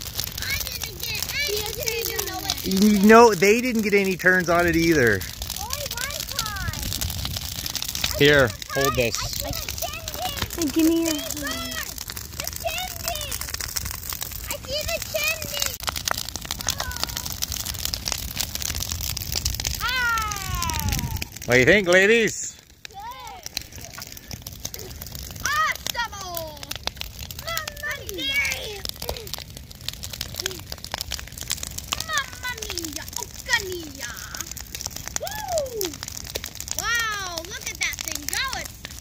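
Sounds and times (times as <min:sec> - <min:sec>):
bonfire crackling and popping: 0:00.0 - 0:39.0
children calling out: 0:00.4 - 0:04.1, 0:08.1 - 0:13.6, 0:16.5 - 0:17.4, 0:19.8 - 0:21.4, 0:22.9 - 0:26.8, 0:27.4 - 0:29.5, 0:31.9 - 0:36.0, 0:36.8 - 0:38.7.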